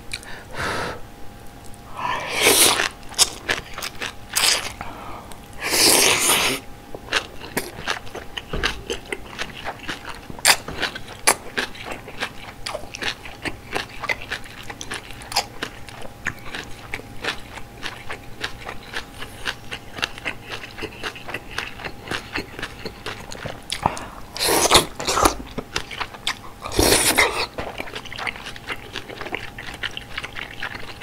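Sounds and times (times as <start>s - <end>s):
wet chewing: 1.6s - 31.0s
slurping noodles: 2.0s - 2.9s, 5.6s - 6.6s, 24.3s - 25.4s, 26.6s - 27.6s.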